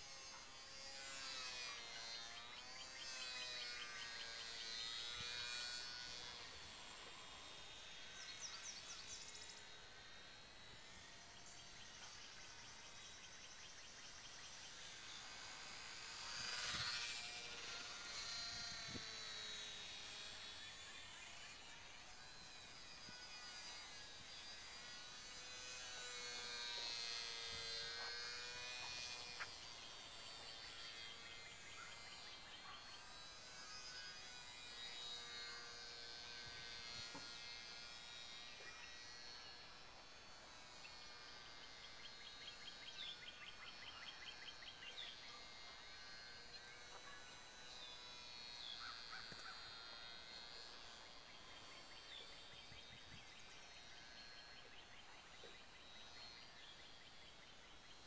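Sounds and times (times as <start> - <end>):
small rc plane motor buzzing: 0.0 - 58.0.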